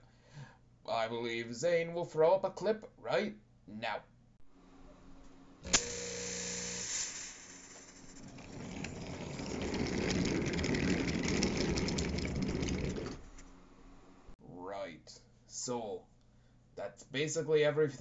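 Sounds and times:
short steady hum: 4.5 - 8.4
toy train rolling on wooden track: 7.1 - 13.2.

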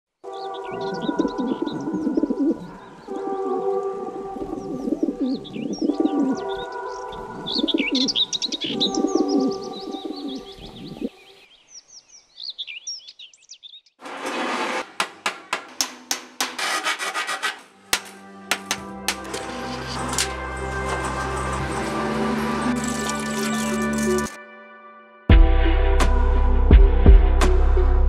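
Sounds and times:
sparrows chirping: 0.3 - 14.0
sharp clicks and scraping: 14.0 - 21.8, 22.6 - 24.4
music with sustained notes and bass: 18.2 - 28.0.

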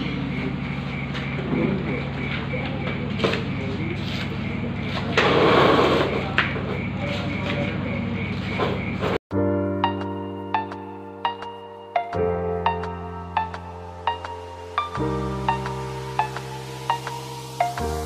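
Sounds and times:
steady low hum: 0.0 - 8.9
music: 9.3 - 18.0.

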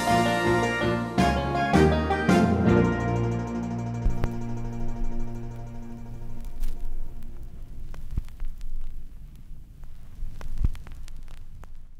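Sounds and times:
low steady hum: 2.8 - 11.9.

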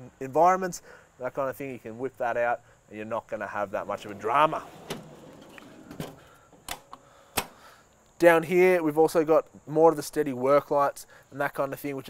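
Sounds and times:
metal drawer sliding on runners: 3.8 - 6.9.

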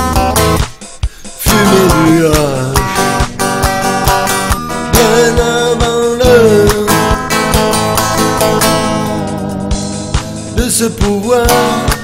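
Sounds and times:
disco backing track with drums: 0.0 - 12.0
electric guitar strummed: 0.0 - 12.0.

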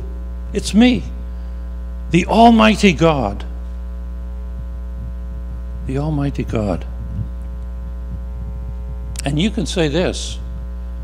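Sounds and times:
electrical mains hum: 0.0 - 11.0
man speaking: 0.6 - 1.2, 2.1 - 3.5, 5.8 - 7.0, 9.2 - 10.5.

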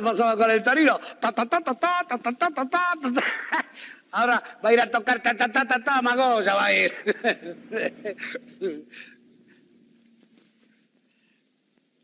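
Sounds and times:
man talking animatedly: 0.0 - 8.2
man laughing: 3.0 - 3.9, 6.8 - 8.7.

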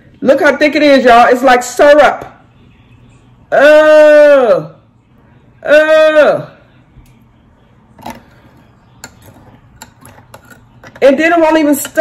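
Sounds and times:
spoon clinking against glass: 9.0 - 11.0.

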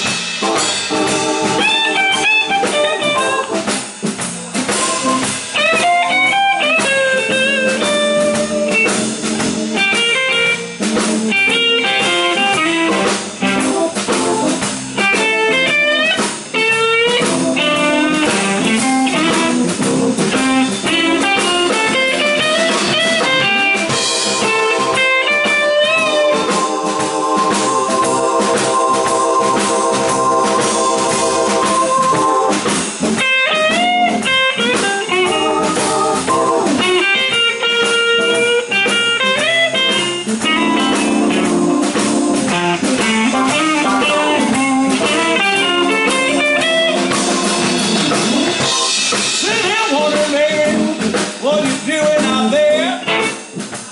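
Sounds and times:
drum kit: 0.0 - 53.9
electric guitar solo: 0.5 - 3.7, 4.7 - 49.6, 52.8 - 53.5.

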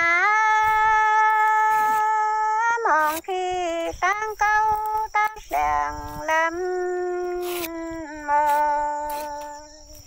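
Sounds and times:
woman singing a long note: 0.0 - 9.8.

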